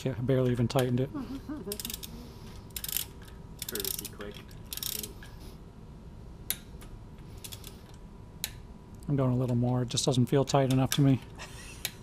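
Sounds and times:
torque wrench ratchet clicking: 0:01.7 - 0:02.1, 0:02.7 - 0:05.3.

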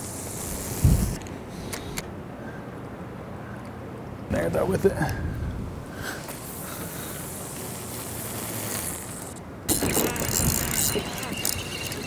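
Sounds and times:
hiss: 0:06.3 - 0:09.4
fishing reel whirring and clicking: 0:08.1 - 0:12.0.

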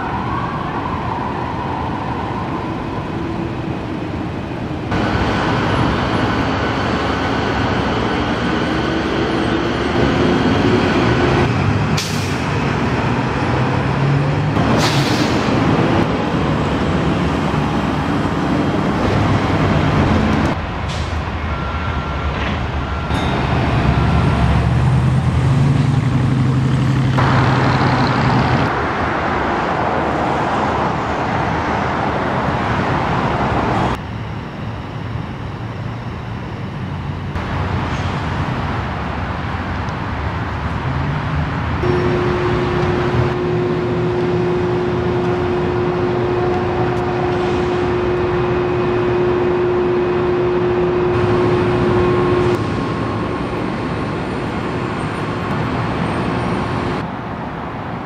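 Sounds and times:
passing cars: 0:00.0 - 0:34.2.

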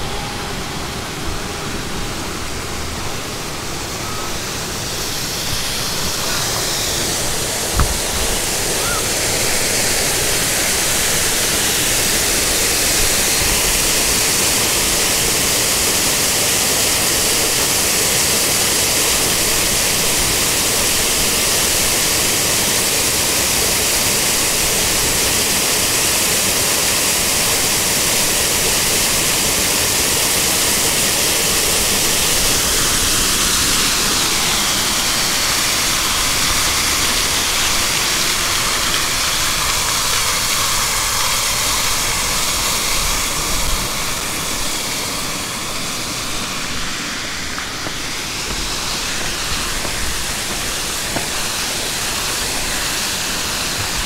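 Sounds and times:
waterfall rushing: 0:00.0 - 0:54.0.

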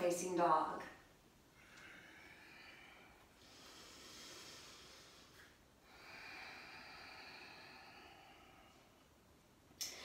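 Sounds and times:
faint slow breathing: 0:01.5 - 0:10.0.

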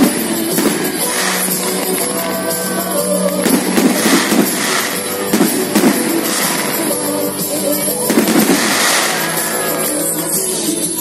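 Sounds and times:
fireworks bangs: 0:00.0 - 0:02.3, 0:03.2 - 0:10.0
loud music: 0:00.0 - 0:11.0.

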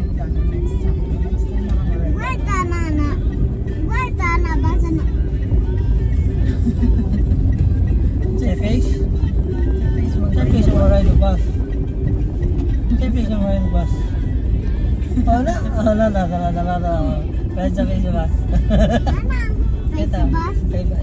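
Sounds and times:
vehicle rumble from inside: 0:00.0 - 0:21.0.

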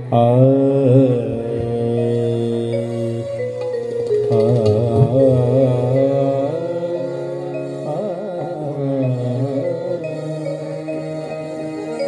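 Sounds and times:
harmonium playing held notes: 0:00.0 - 0:12.0
person singing aah: 0:00.0 - 0:12.0.

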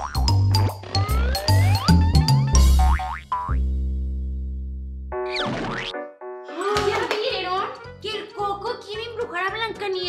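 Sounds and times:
bouncy logo jingle music: 0:00.0 - 0:04.1.

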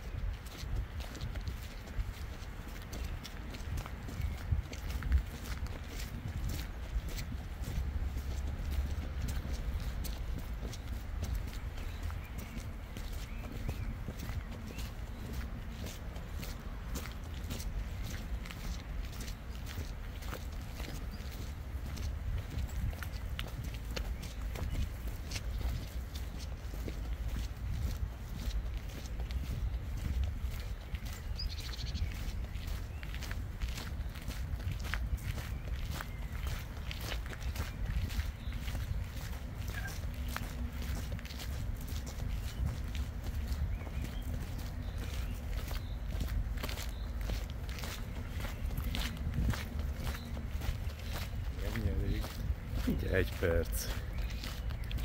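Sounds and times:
footsteps on footpath: 0:00.0 - 0:55.0.

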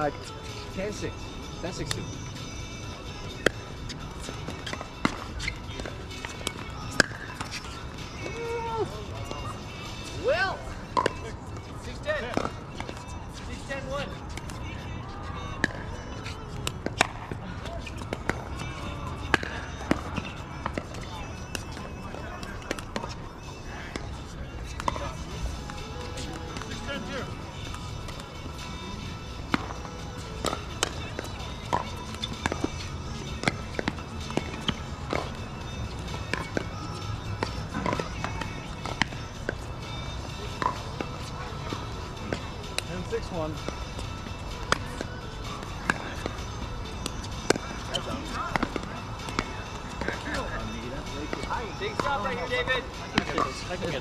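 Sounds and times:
background music: 0:00.0 - 0:54.0
distant voices: 0:00.0 - 0:54.0.

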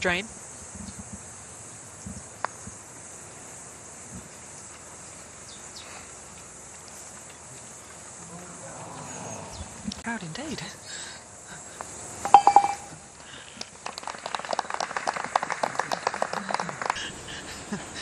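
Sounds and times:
outdoor background hiss: 0:00.0 - 0:18.0
putter striking golf ball: 0:12.3 - 0:12.9.

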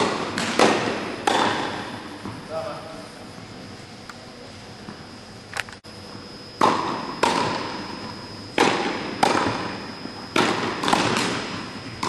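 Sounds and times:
tennis ball pops: 0:00.4 - 0:01.6.

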